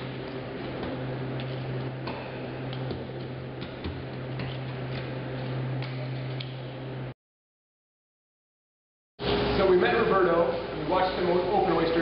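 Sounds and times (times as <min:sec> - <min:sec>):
steady low hum: 0:00.0 - 0:07.2.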